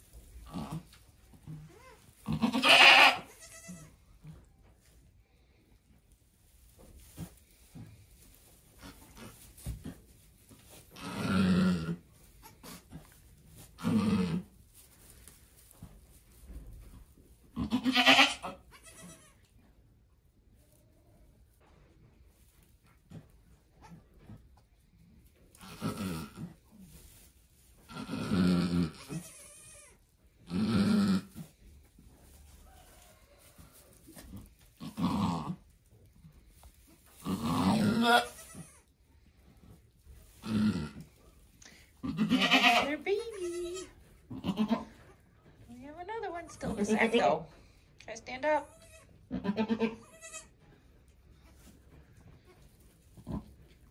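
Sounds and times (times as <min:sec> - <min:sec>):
goat bleating: 0:01.6 - 0:04.0, 0:17.6 - 0:19.4, 0:27.9 - 0:31.3, 0:37.2 - 0:38.9, 0:42.0 - 0:45.0, 0:48.6 - 0:50.6.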